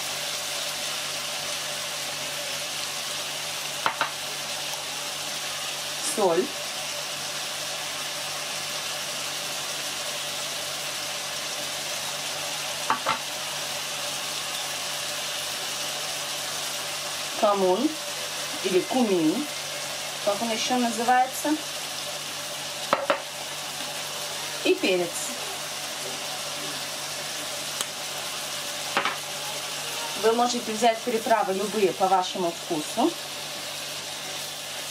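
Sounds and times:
food sizzling in a pan: 0.0 - 34.9.

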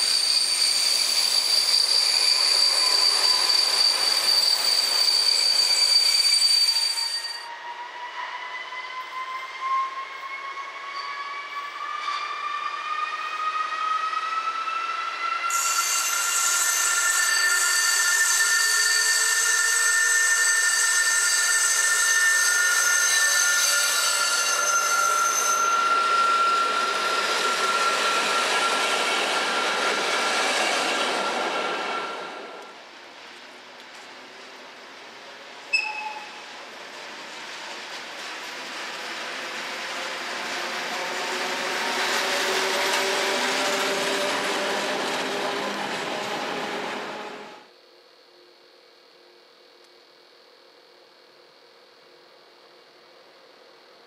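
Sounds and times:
train wheel squeal: 0.0 - 32.8, 33.9 - 47.7
diesel railcar engine pulling away: 34.1 - 47.6.

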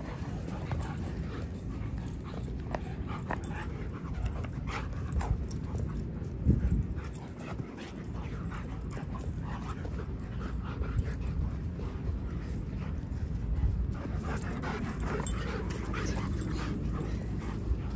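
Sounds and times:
dogs playing rough: 0.0 - 17.9
steady low rumble: 0.0 - 17.9.

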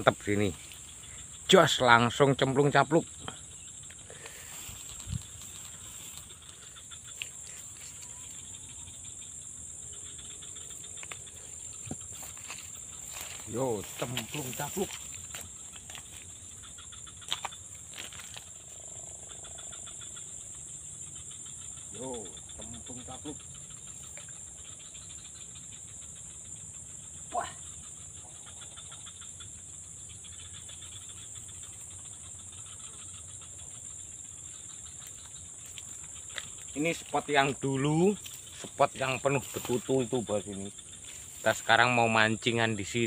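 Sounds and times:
insects chirring: 0.0 - 43.0.

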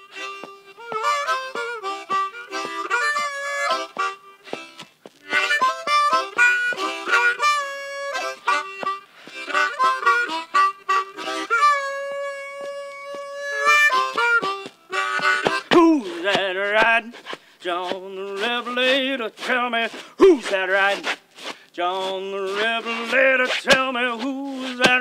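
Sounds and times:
solo harmonica: 0.0 - 25.0.

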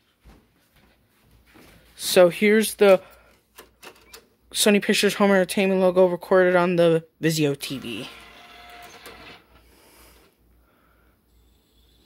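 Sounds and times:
disc drive whirring: 7.7 - 10.3.

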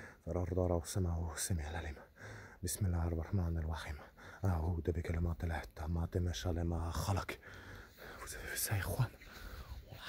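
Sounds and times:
man whispering: 0.0 - 10.0.

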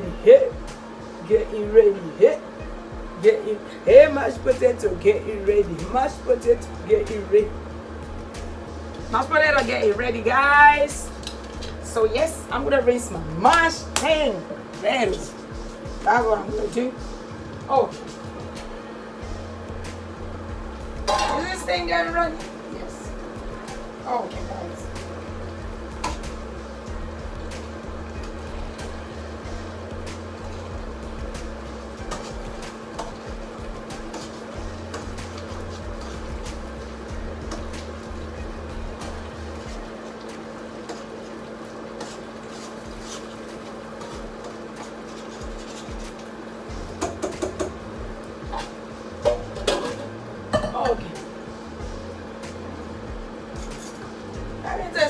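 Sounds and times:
background music with bass line: 0.0 - 3.3, 3.9 - 41.6, 45.4 - 55.0
steady hum: 0.0 - 55.0
metal pots and utensils clanking: 21.0 - 21.8, 25.9 - 26.5, 31.9 - 36.8, 37.4 - 51.3.

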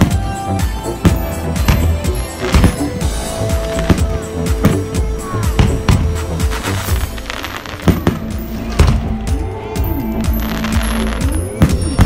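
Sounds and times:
fireworks bangs: 0.0 - 9.4
music playing: 0.0 - 12.0.

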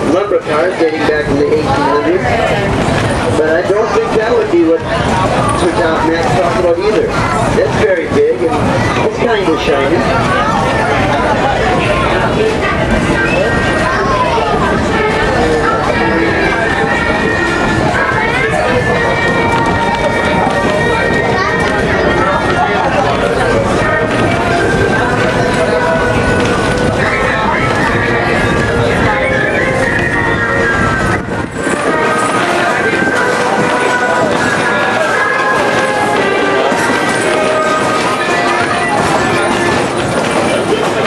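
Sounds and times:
passengers' voices: 0.0 - 41.0
railway coach rumbling: 0.0 - 41.0
train wheels on rails: 0.0 - 41.0.

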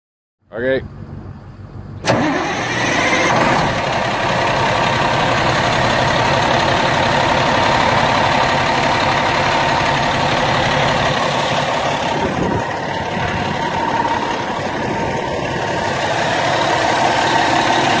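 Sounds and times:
diesel truck engine starting and idling: 0.6 - 18.0.

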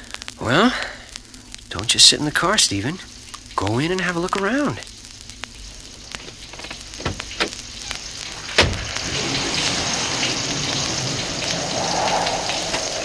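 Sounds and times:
steady hiss: 0.0 - 13.0.

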